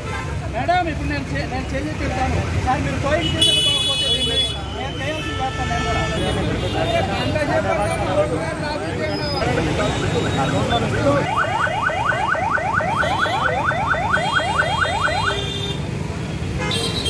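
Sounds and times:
people talking over one another: 0.0s - 15.5s
traffic rumble: 0.0s - 17.0s.

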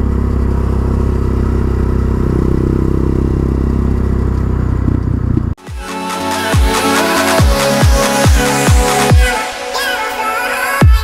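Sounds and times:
quad bike engine running: 0.0s - 5.6s
electronic music with heavy bass: 5.6s - 11.0s.

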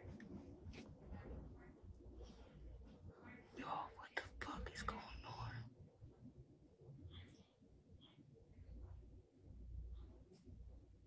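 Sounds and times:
person whispering: 3.3s - 5.7s.

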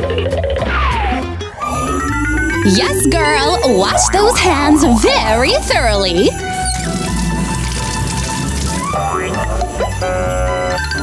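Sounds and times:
background music: 0.0s - 11.0s
water running from tap: 6.4s - 9.0s
hands washing: 6.6s - 9.0s.

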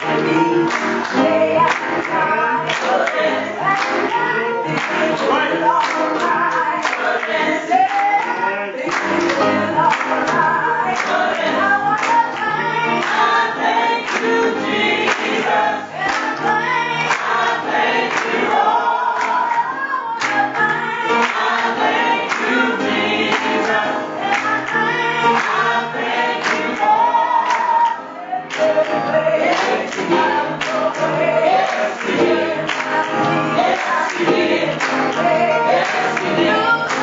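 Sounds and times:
choir singing gospel: 0.0s - 37.0s
piano accompaniment: 0.0s - 37.0s
rhythmic hand-clapping: 0.0s - 37.0s.

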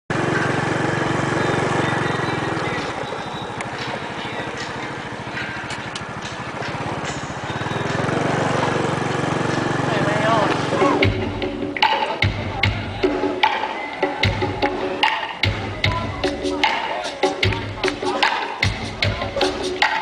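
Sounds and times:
engine running: 0.1s - 13.6s.

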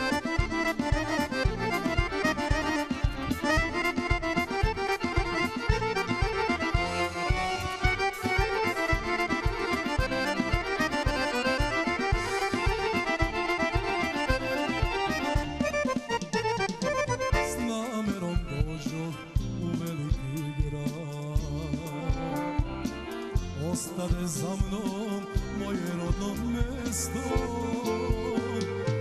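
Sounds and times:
accordion melody: 0.0s - 29.0s
keyboard: 0.0s - 29.0s
steady drum beat: 0.0s - 29.0s.

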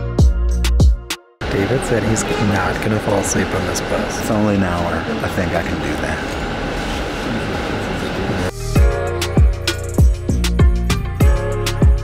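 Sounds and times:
music with deep drum beat: 0.0s - 1.2s, 8.5s - 12.0s
bus road rumble: 1.4s - 8.7s
faint voices: 7.0s - 8.6s.

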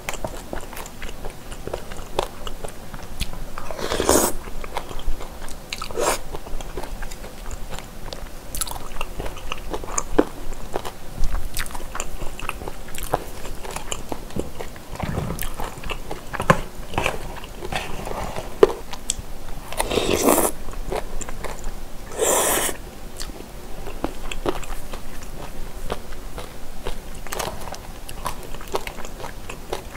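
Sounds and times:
wet chewing: 0.0s - 29.9s
slurping noodles: 3.7s - 4.4s, 19.7s - 20.6s, 22.1s - 22.8s.

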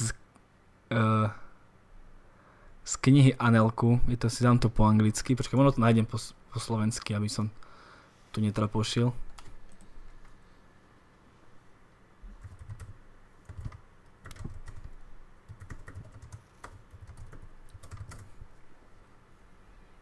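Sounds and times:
computer keyboard typing: 9.3s - 9.9s, 12.4s - 18.4s.

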